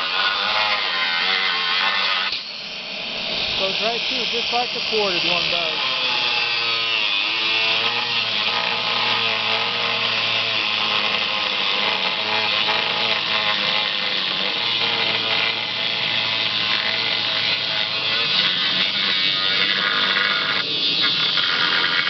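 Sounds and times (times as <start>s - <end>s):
angle grinder grinding steel: 0.0s - 22.0s.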